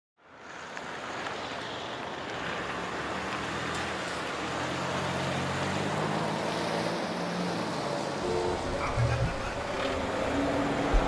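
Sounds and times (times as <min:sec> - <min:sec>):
street traffic rush: 0:00.2 - 0:11.0
vehicle engine hum: 0:02.3 - 0:11.0.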